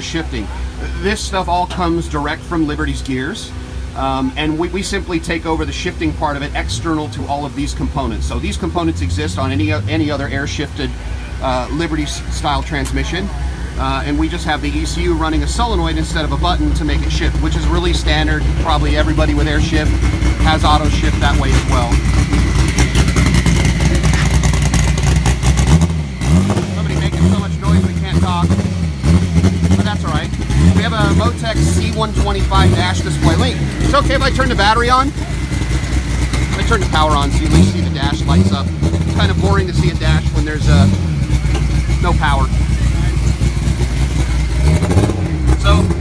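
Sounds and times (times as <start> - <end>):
engine running: 0.0 - 46.0
faint voices: 9.5 - 24.5.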